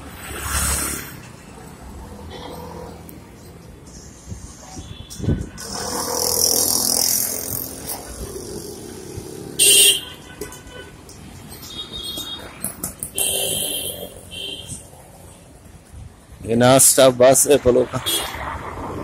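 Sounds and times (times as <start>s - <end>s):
vehicles passing: 0.0s - 19.0s
car horn blast: 9.6s - 10.9s.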